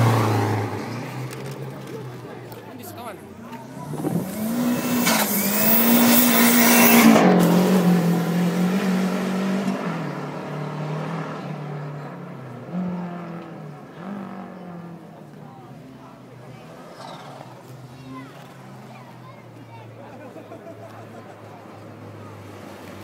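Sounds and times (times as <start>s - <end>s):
car accelerating hard: 0.0s - 2.4s, 3.4s - 19.1s.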